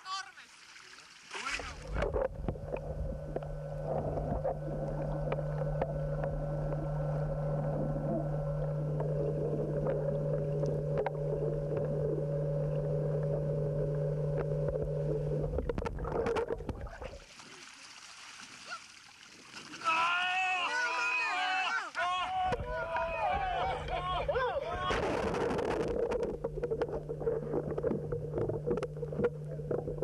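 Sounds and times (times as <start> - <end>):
water washing: 0.5 - 20.1
clicks and bubbling: 1.4 - 17.3, 24.8 - 30.0
motor hum underwater: 1.4 - 17.3, 19.2 - 30.0.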